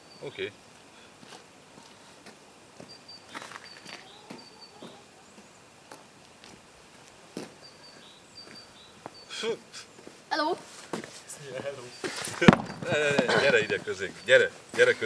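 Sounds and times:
short high bird chirps: 2.9s - 5.0s.

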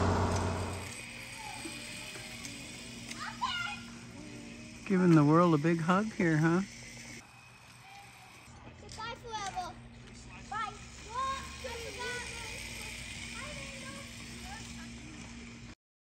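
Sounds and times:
steady low hum: 0.0s - 8.6s
children calling out: 1.2s - 4.5s.

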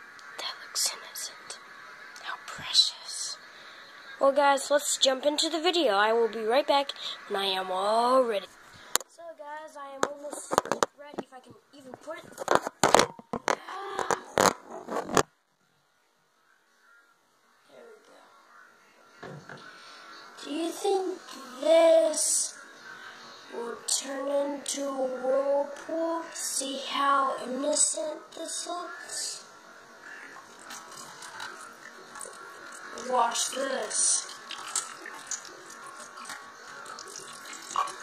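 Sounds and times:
phone handling noise: 12.3s - 15.3s
water sloshing in plastic bottle: 30.4s - 38.0s
water trickling into metal sink: 30.4s - 38.0s.

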